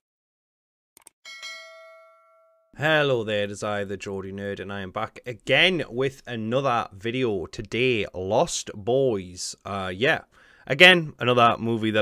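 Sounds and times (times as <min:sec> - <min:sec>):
notification bell ding: 0:01.3 - 0:02.8.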